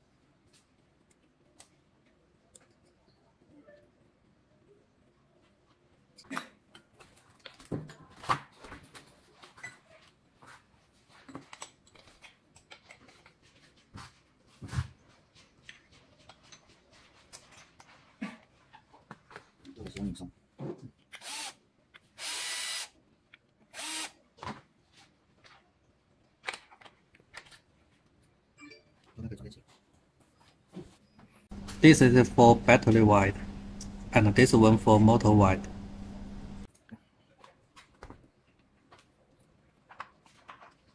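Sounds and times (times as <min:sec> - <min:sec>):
clicks and knocks of tools: 0:11.2 - 0:13.6
electric screwdriver driving screws: 0:21.2 - 0:21.6, 0:22.2 - 0:22.9, 0:23.8 - 0:24.2.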